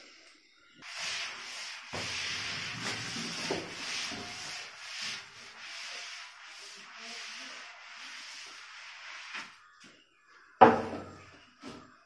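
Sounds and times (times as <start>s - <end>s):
eraser rubbing on whiteboard: 0.8s - 9.6s.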